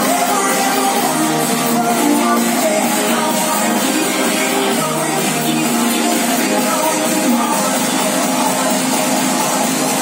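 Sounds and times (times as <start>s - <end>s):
loud dance music: 0.0s - 10.0s.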